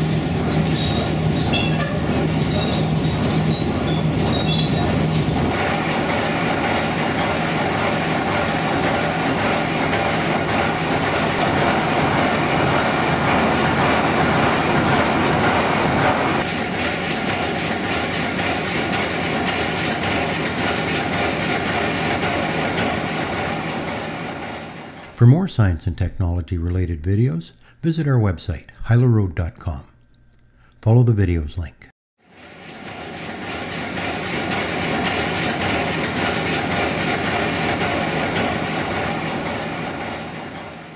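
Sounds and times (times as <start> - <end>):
mill machinery clattering: 0.0 - 26.2, 32.3 - 40.9.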